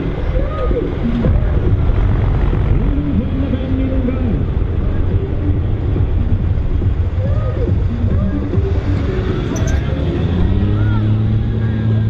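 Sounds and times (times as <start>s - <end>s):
truck diesel engine under load: 1.0s - 7.2s.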